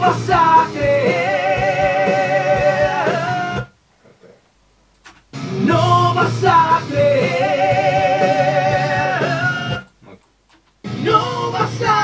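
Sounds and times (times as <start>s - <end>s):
person singing rock song: 0.0s - 3.7s, 5.4s - 9.8s, 10.9s - 12.0s.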